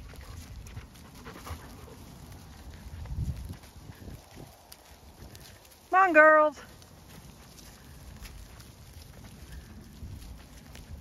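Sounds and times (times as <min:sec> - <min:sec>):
small dog panting: 0:00.0 - 0:03.0
footsteps on grass: 0:00.0 - 0:11.0.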